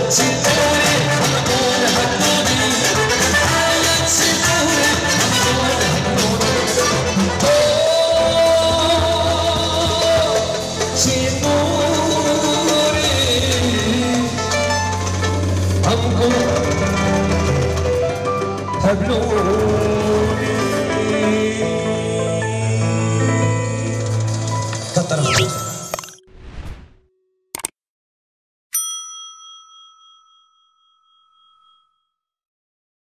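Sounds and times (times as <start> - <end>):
frame drum and drum kit beating: 0.0 - 20.4
band music: 0.0 - 25.6
keyboard: 0.0 - 26.3
bell ding: 25.2 - 26.3, 28.7 - 32.1.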